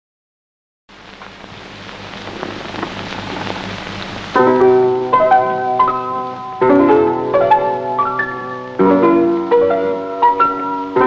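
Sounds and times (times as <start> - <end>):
film soundtrack hiss and hum: 0.9 - 11.0.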